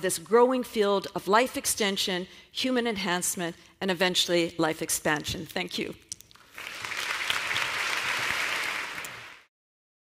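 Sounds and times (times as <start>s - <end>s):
audience applauding: 6.4s - 9.5s.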